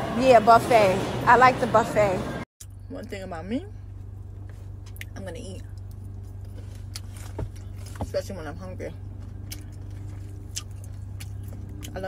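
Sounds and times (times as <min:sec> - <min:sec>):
car engine idling: 0:02.7 - 0:12.0.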